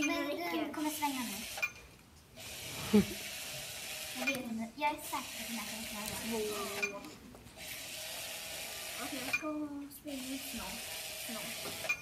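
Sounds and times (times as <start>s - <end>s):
small robot motors whirring: 0.5s - 1.7s, 2.4s - 7.0s, 7.6s - 12.0s.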